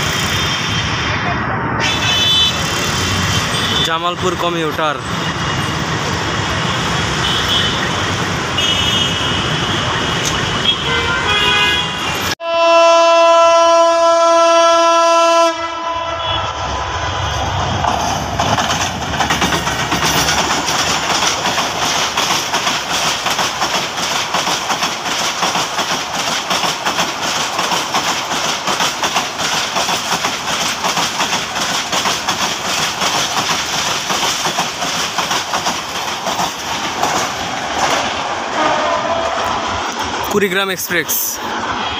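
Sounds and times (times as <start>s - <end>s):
train rumbling past: 0.0s - 41.9s
locomotive horn blast: 1.8s - 2.7s, 8.6s - 10.0s, 10.6s - 16.7s, 38.5s - 39.4s
wheels clattering over rail joints: 17.7s - 38.6s.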